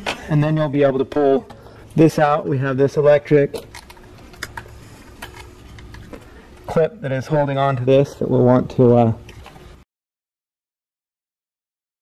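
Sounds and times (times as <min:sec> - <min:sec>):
low steady hum: 0:00.0 - 0:09.8.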